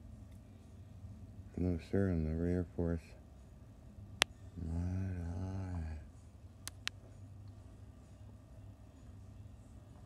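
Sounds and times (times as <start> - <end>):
sharp clicks: 6.6 - 7.0.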